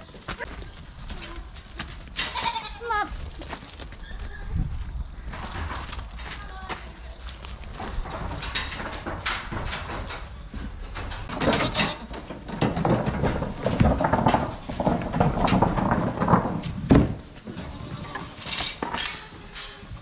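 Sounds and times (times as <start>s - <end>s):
goat hooves clattering on concrete: 0.0s - 20.0s
metal gates rattling and knocking: 7.7s - 20.0s.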